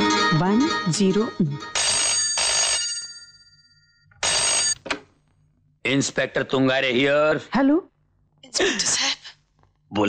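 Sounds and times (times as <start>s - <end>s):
desk telephone ringing: 1.7s - 4.9s.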